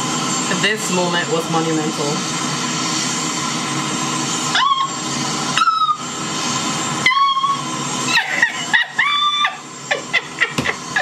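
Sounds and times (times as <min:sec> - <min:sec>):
jet engine hiss: 0:00.0 - 0:11.0
short high squeals: 0:05.6 - 0:06.1.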